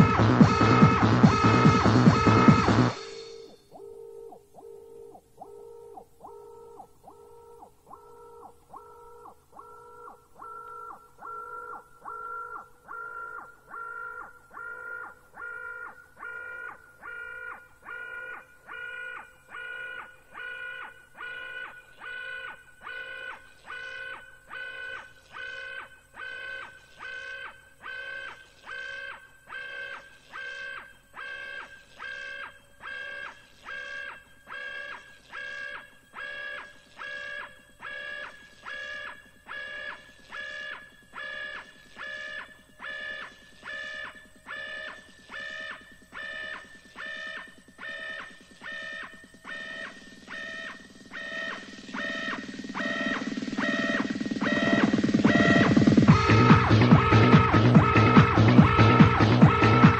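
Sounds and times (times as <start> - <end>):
pulsing synthesizer chord: 0.0 - 3.8, 41.3 - 59.9.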